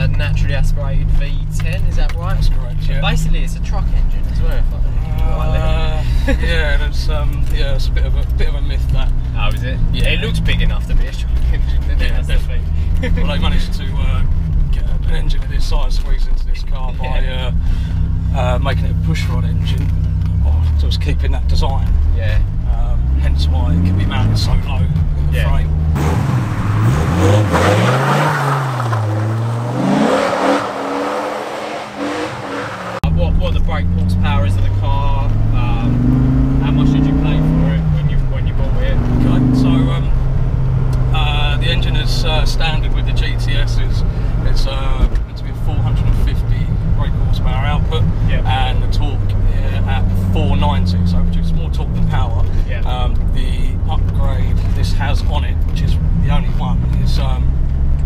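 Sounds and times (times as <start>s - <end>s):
car engine revving: 0.0s - 58.0s
road noise: 0.0s - 58.0s.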